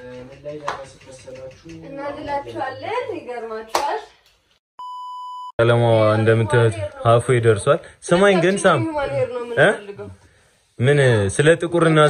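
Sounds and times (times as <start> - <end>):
censor bleep: 4.8 - 5.6.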